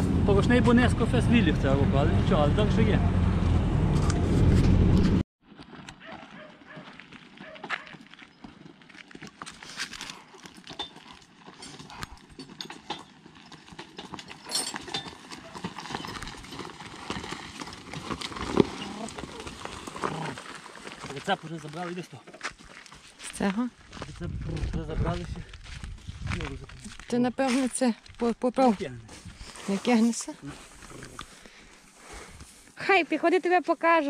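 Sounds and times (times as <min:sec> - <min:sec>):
loud low rumble: 0:00.0 - 0:05.2
hooves clopping on gravel: 0:05.5 - 0:34.0.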